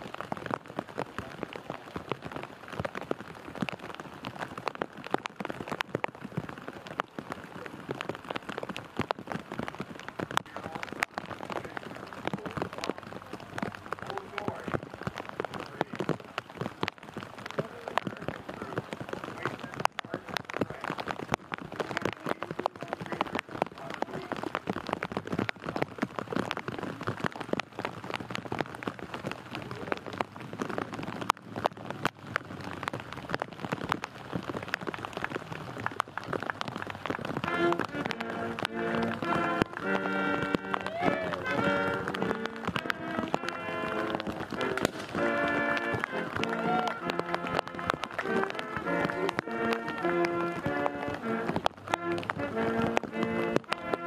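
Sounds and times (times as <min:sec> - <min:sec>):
rain pattering: 0:00.0 - 0:54.0.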